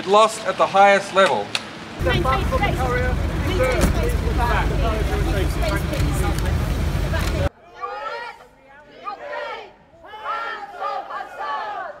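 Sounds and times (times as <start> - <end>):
crowd shouting: 2.0 - 12.0.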